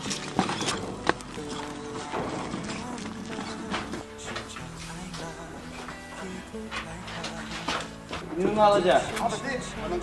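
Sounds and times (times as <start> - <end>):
metal wheelbarrow knocks: 0.0 - 4.6
background music: 0.0 - 10.0.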